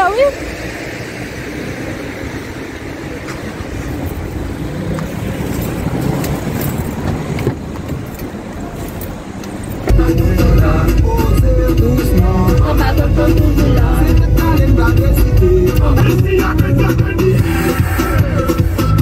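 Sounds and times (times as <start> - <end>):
city street traffic rumble: 0.0 - 19.0.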